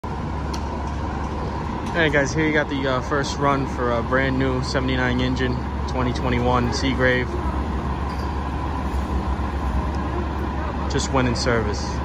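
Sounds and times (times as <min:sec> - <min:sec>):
diesel fire engine idling: 0:00.0 - 0:12.0.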